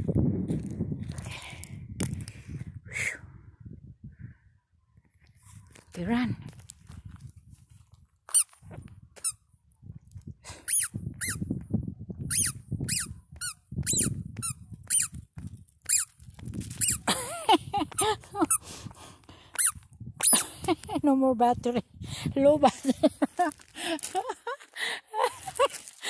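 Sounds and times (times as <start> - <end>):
squeaky dog toy squeaking: 10.6 - 11.4, 12.2 - 15.2, 15.8 - 17.1, 19.6 - 20.4
crunching on gravel: 23.0 - 26.0.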